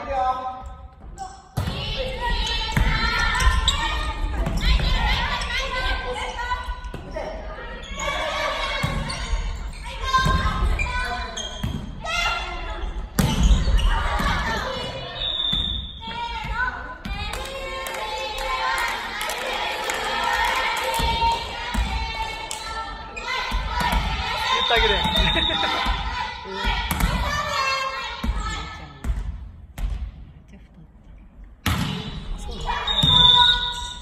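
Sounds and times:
volleyballs struck and bouncing: 23.5s - 27.4s
players' voices calling out: 24.2s - 27.8s.

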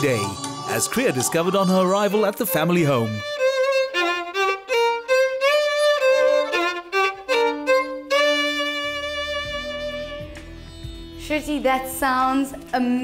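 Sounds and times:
solo bowed violin: 0.0s - 11.0s.

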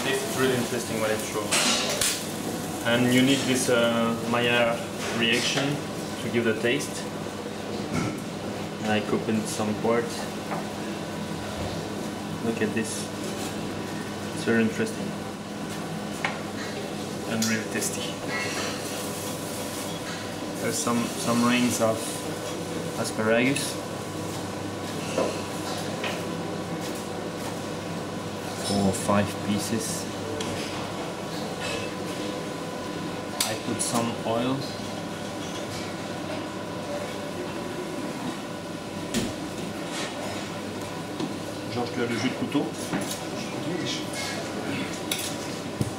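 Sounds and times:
kitchen equipment hum: 0.0s - 45.9s.

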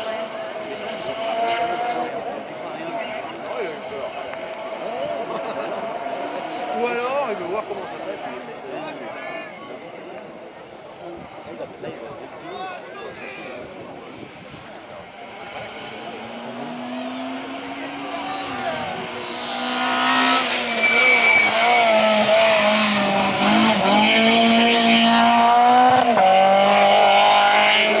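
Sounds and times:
rally car engine: 0.0s - 28.0s.

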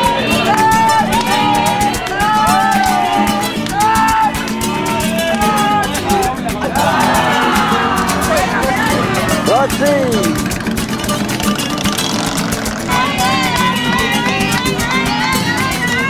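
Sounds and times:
crowd voices: 0.0s - 16.0s
motorcycle engine running: 0.0s - 16.0s.

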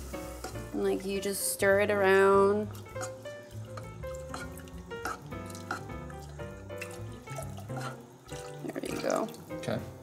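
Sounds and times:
background music of held notes: 0.0s - 10.0s
milk pouring into saucepan: 2.7s - 9.8s.

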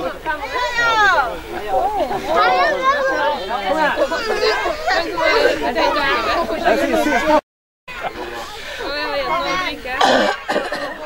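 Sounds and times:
people talking: 0.0s - 11.0s
harsh cough: 10.0s - 11.0s.

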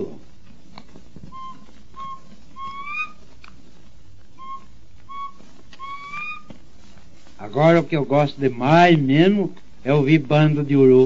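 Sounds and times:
person whistling bird call: 4.4s - 6.4s.

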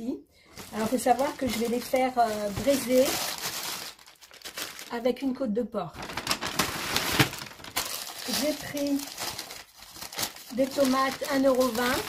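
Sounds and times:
paper bag rustling and crinkling: 0.5s - 5.3s, 6.0s - 12.0s.

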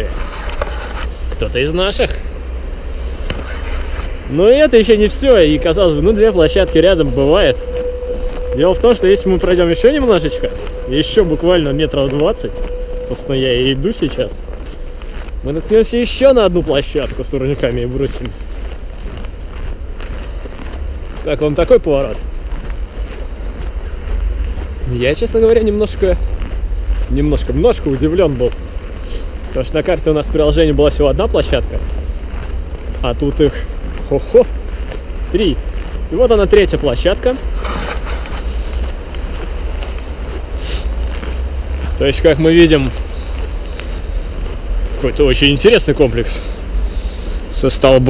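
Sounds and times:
footsteps in snow: 0.0s - 48.0s
wind buffeting microphone: 0.0s - 48.0s.

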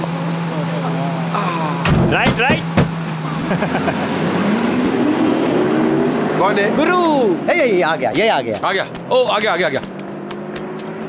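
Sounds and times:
road noise: 0.0s - 11.0s
vehicle engine running: 0.0s - 11.0s.

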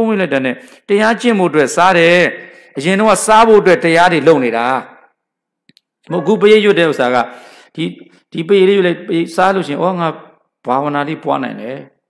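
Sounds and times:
man speaking into a microphone: 0.0s - 5.1s, 6.0s - 12.0s.

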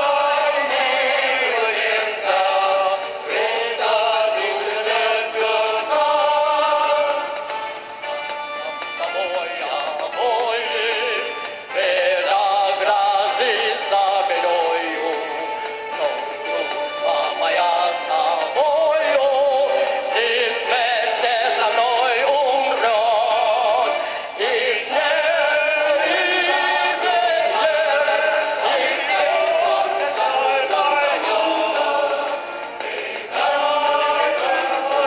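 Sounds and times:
men singing with vibrato: 0.0s - 35.0s
musical accompaniment: 0.0s - 35.0s.

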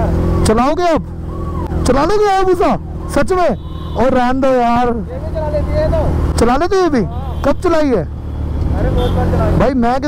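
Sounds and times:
motorcycle engines droning: 0.0s - 10.0s.

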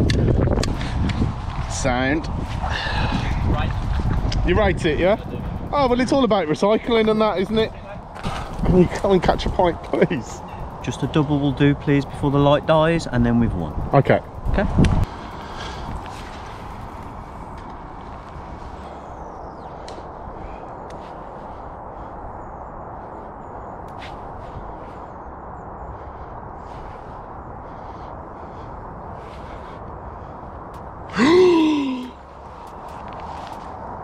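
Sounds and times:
man crying out: 31.1s - 32.2s.

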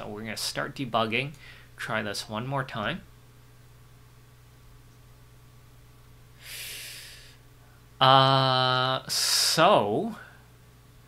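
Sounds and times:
low electrical hum: 0.0s - 11.0s
breath close to microphone: 6.4s - 7.8s.

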